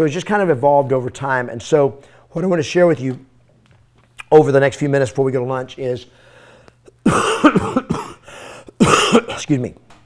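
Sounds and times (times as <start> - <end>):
man coughing: 6.9 - 9.5.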